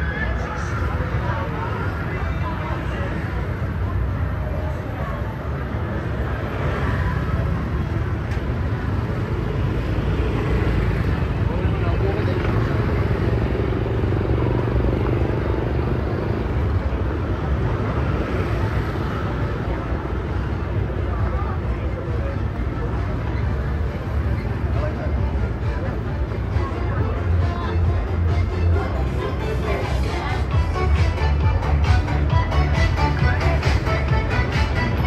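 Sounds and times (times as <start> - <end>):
motor scooter engines passing: 0.0 - 35.0
indistinct voices: 21.0 - 35.0.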